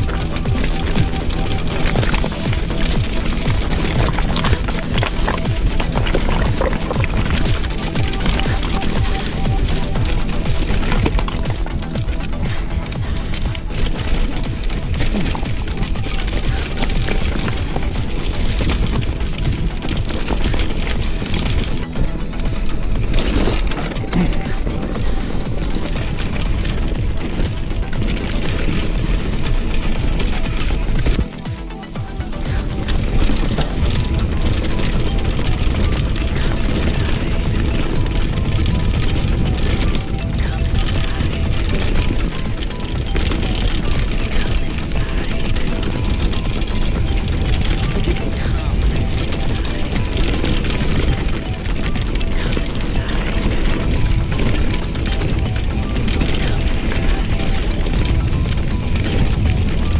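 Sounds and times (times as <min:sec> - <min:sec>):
background music: 0:00.0 - 0:59.9
bike rattling over loose rocks: 0:00.0 - 0:59.9.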